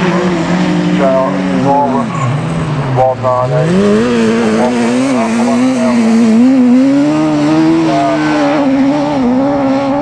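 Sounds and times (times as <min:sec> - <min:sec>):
racing car engines revving: 0:00.0 - 0:10.0.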